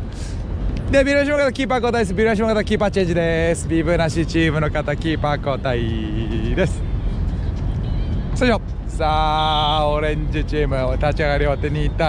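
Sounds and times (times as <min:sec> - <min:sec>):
outdoor background rumble: 0:00.0 - 0:12.0.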